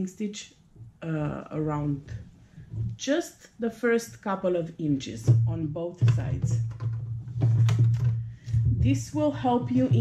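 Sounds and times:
woman talking: 0:00.0 - 0:06.7, 0:08.6 - 0:10.0.

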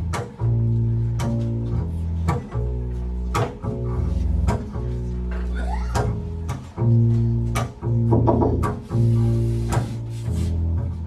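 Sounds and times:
double bass playing low notes: 0:00.0 - 0:11.0.

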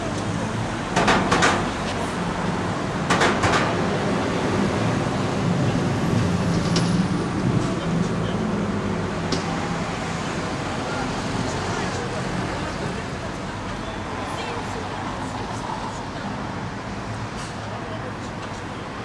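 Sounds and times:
street traffic noise: 0:00.0 - 0:19.0.

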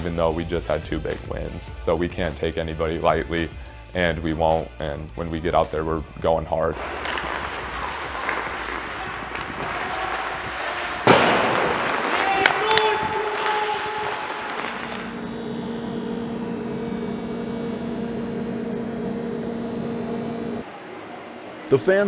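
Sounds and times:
hockey stick shot crack: 0:06.8 - 0:14.9
skates scraping ice: 0:06.8 - 0:14.9
grinder motor hum: 0:14.4 - 0:20.6.

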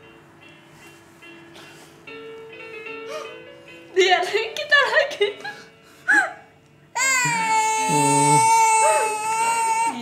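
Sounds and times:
infant crying: 0:07.0 - 0:10.0.

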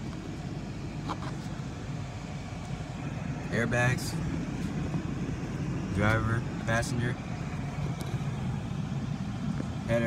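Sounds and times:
car engine rumble in cabin: 0:00.0 - 0:10.0.

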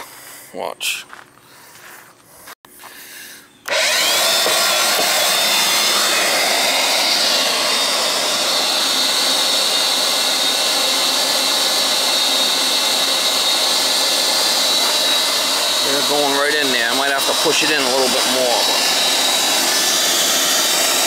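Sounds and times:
shop vacuum motor whining: 0:03.6 - 0:21.0.

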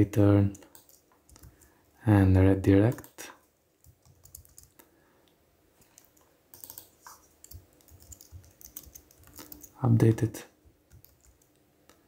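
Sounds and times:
computer keyboard typing: 0:00.5 - 0:01.7, 0:03.8 - 0:04.8, 0:05.9 - 0:09.8, 0:10.9 - 0:11.6.

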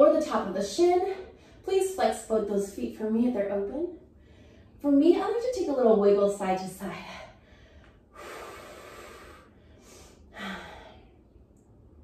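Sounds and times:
woman exhaling: 0:07.5 - 0:11.1.

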